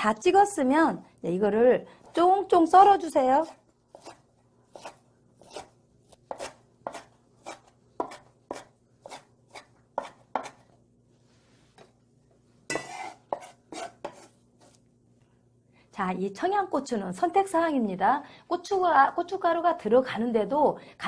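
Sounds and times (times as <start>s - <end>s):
knife chopping on wooden board: 3.4s - 10.6s, 12.7s - 14.3s
knife blade scraping board: 3.9s - 10.6s, 12.7s - 14.7s.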